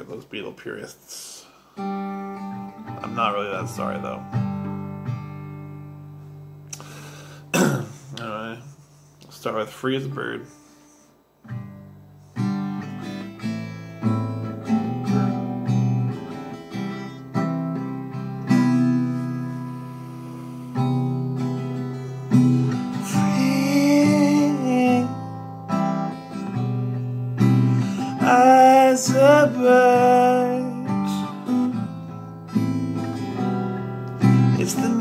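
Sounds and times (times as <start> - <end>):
acoustic guitar strumming chords: 1.7 - 35.0.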